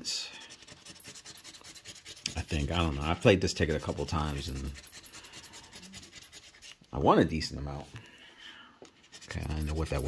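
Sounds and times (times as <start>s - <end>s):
scratching lottery ticket with metal: 0.1s - 6.8s, 9.0s - 10.0s.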